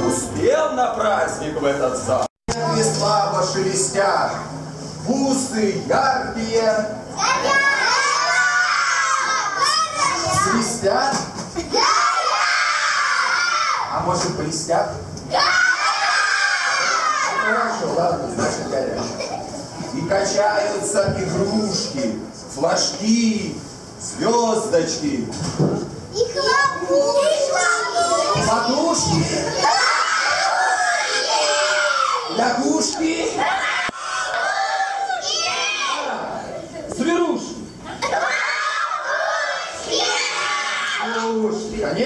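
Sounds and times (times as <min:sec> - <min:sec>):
children shouting together: 0:07.2 - 0:10.6, 0:11.6 - 0:13.9, 0:15.3 - 0:17.8, 0:26.2 - 0:32.4, 0:33.3 - 0:36.4, 0:37.9 - 0:41.3.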